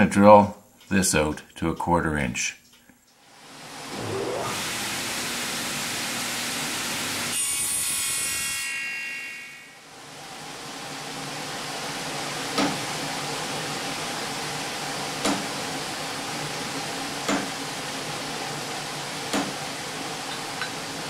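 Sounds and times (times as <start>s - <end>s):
table saw running: 3.8s - 8.7s.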